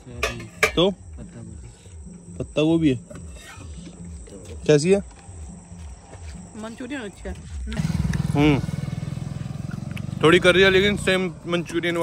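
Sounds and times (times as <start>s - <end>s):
engine rumbling with fast throb: 7.5s - 12.0s.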